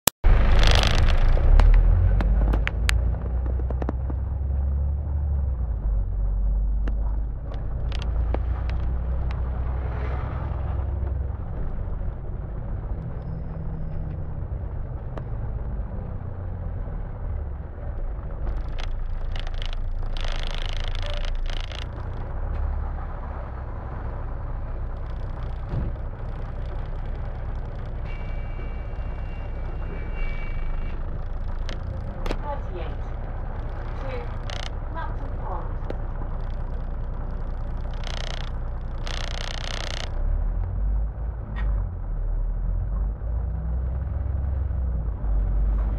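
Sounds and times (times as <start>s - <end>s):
bus engine rumble: 0.0s - 45.9s.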